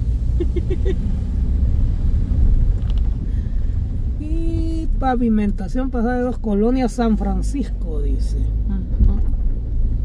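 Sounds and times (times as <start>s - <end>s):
car engine and tyre rumble: 0.0s - 10.0s.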